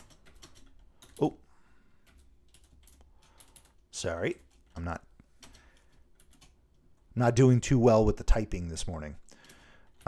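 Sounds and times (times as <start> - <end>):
computer keyboard typing: 0.0 - 1.4, 2.0 - 6.8, 9.4 - 10.0.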